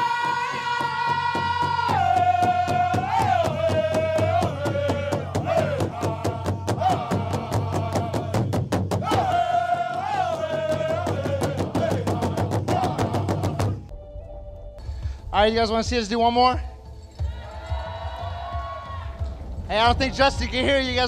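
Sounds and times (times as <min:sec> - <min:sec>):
fast steady drumbeat: 0:00.0 - 0:13.9, 0:15.1 - 0:21.0.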